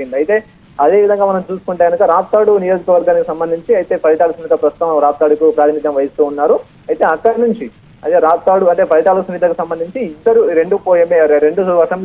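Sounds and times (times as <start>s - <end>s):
narrator reading news: 0.0s - 12.0s.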